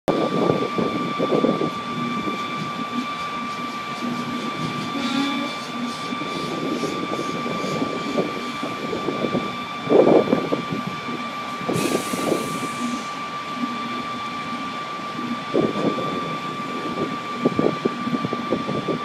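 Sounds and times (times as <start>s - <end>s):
high-pitched machinery whine: 0.1s - 19.0s
wind buffeting microphone: 0.1s - 19.0s.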